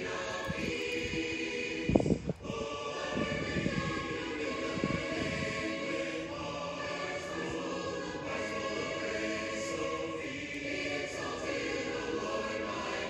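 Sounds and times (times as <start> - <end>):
congregation singing a hymn: 0.0 - 13.0.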